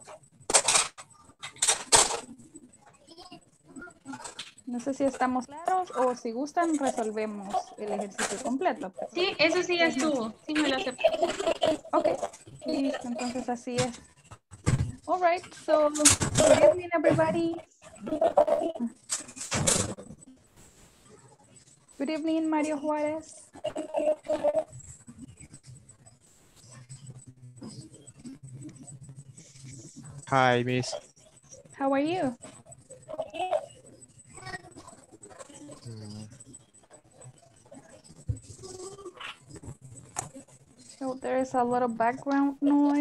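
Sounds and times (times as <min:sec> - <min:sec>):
thin high whine: 0:19.1 - 0:43.0.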